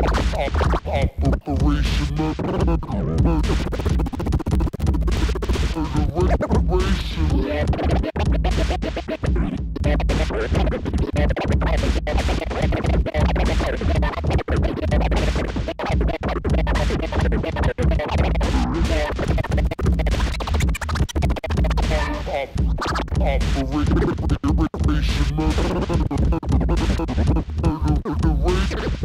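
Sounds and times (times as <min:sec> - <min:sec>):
bass-heavy beat: 0:00.0 - 0:29.0
vinyl record scratching: 0:00.0 - 0:29.0.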